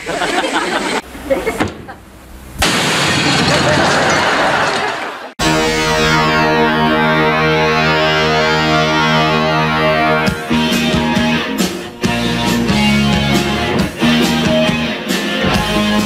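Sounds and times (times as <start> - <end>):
gas igniting blast: 1.6 - 3.5
held music chord: 5.4 - 14.9.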